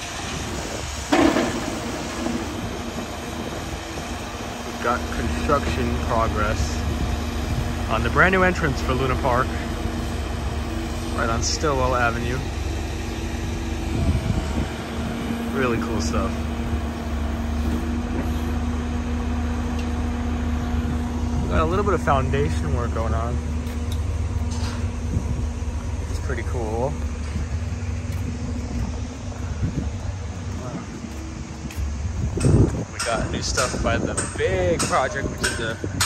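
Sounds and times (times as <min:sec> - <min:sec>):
diesel engine rumbling: 0:00.0 - 0:36.0
street ambience: 0:00.0 - 0:36.0
wind buffeting microphone: 0:00.0 - 0:36.0.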